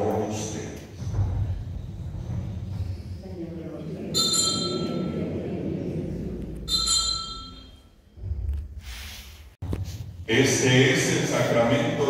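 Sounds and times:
bright bell ringing: 4.1s - 5.2s, 6.7s - 8.0s.

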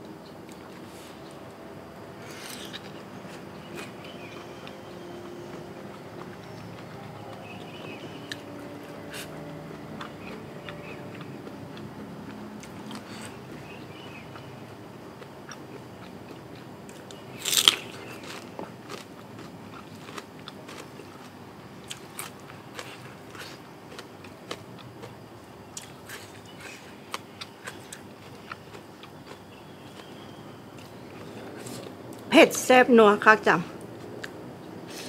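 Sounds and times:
wet chewing: 2.2s - 14.5s, 25.8s - 32.2s
crisp crunch of a bite: 17.4s - 21.3s.

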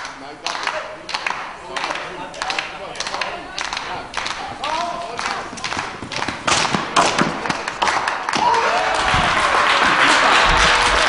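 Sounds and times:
onlookers clapping and cheering: 0.0s - 11.0s.

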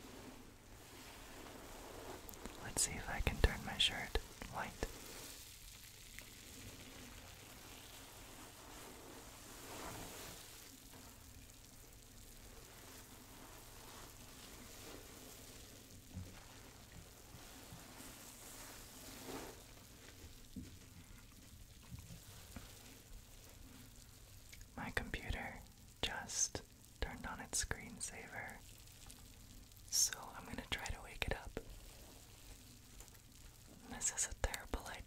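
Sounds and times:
bubble bath foam fizzing: 0.0s - 35.0s.

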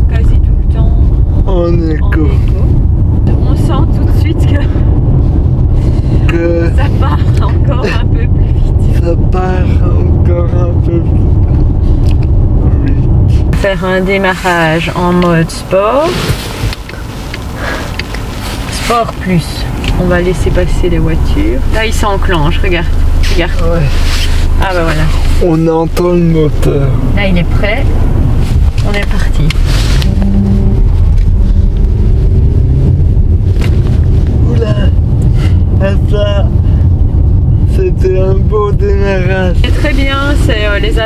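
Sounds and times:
car cabin low rumble: 0.0s - 41.0s
diesel engine accelerating: 0.0s - 41.0s.

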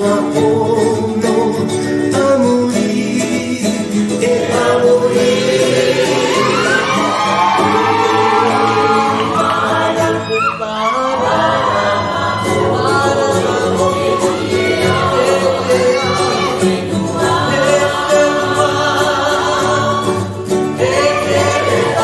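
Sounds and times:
group of voices singing: 0.0s - 22.0s.

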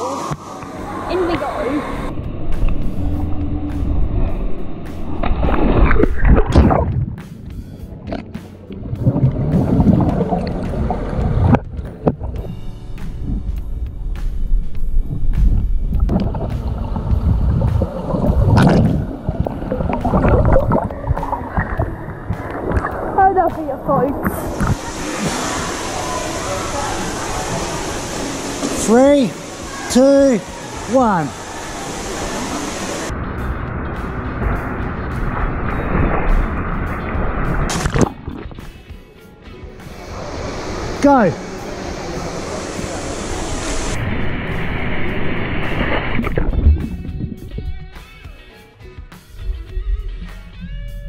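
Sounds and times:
indoor pool hiss: 0.0s - 5.8s, 12.4s - 38.0s, 39.7s - 46.2s
muffled underwater sloshing: 0.2s - 13.6s, 15.0s - 33.1s
splash into pool: 35.8s - 38.6s.

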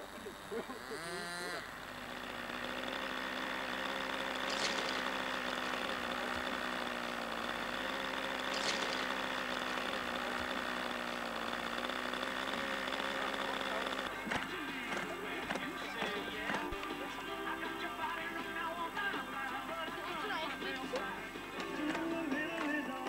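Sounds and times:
short bursts of noise: 0.0s - 17.0s
model aircraft engine running: 0.0s - 23.0s.

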